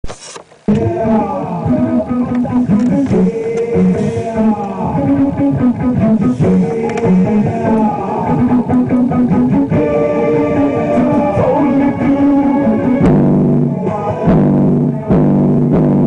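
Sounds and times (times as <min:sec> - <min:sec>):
electric bass guitar riff: 0:00.6 - 0:16.0.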